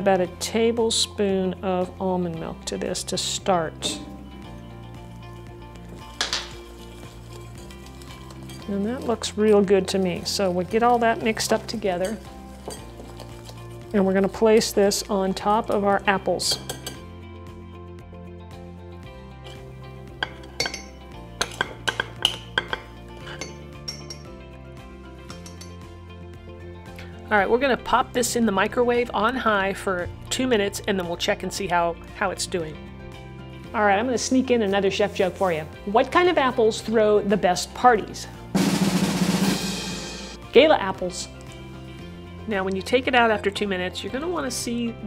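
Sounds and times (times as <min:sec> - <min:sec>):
background music: 0:00.0 - 0:45.0
metal utensil clinking on glass bowl: 0:06.2 - 0:09.3, 0:16.5 - 0:17.0, 0:20.2 - 0:24.3, 0:25.3 - 0:25.8.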